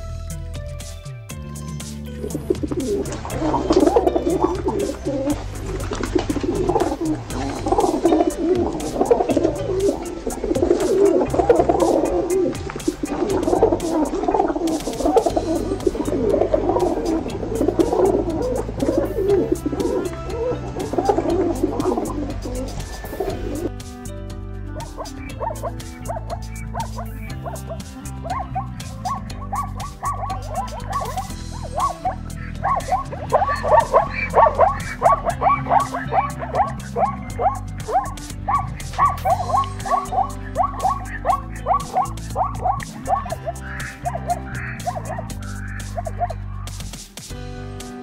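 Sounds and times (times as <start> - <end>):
background music with low notes: 0.0 - 48.0
pigeon cooing: 2.2 - 23.7, 24.8 - 47.0
zebra yelping barks: 2.3 - 23.7, 24.8 - 47.0.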